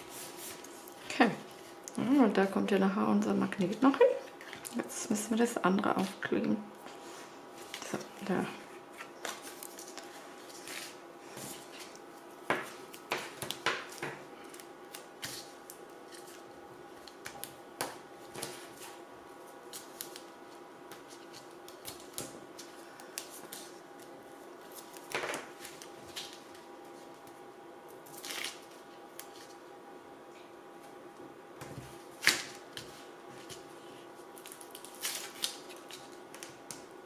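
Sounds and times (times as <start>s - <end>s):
faint steady hum: 0.0s - 37.0s
paper rustling and crinkling: 6.9s - 17.5s, 18.2s - 27.4s, 31.7s - 36.8s.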